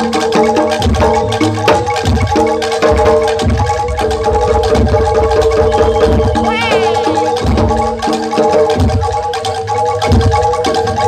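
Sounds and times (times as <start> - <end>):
fast percussion strokes: 0.0 - 11.0
low drum beats: 0.8 - 9.0
ringing metallophone notes: 1.2 - 11.0.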